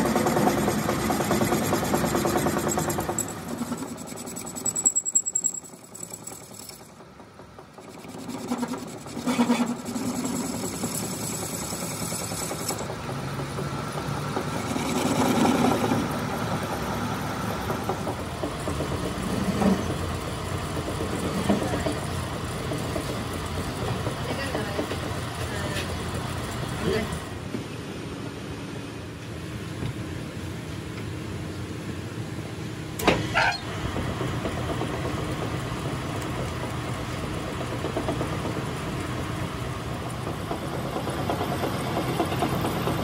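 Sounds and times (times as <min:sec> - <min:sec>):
metal lathe cutting metal: 0:00.0 - 0:07.0, 0:07.8 - 0:13.2.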